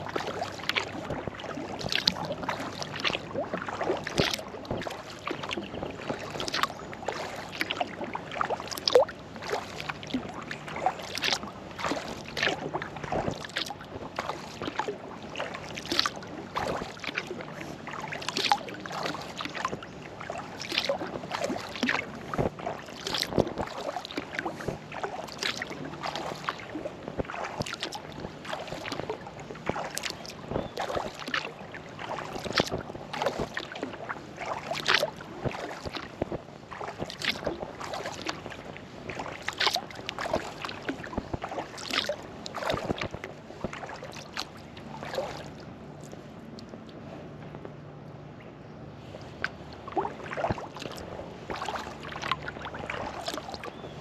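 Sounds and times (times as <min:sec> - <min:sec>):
kayak paddle splashing water: 0:00.0 - 0:46.7, 0:49.0 - 0:54.0.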